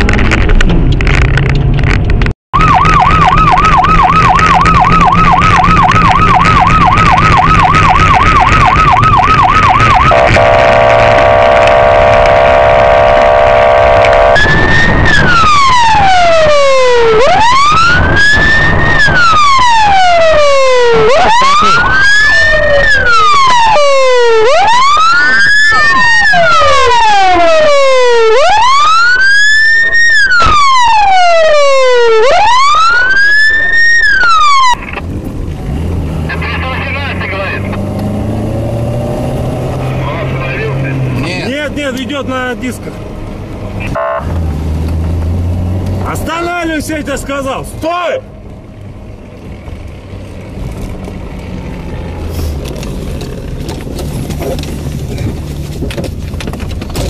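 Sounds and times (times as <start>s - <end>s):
police siren: 2.6s - 35.0s, 43.8s - 44.4s.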